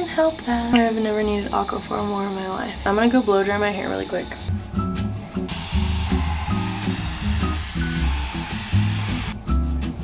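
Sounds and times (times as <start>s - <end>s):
background music with bass line: 4.5s - 10.0s
hair dryer blowing: 5.5s - 9.4s.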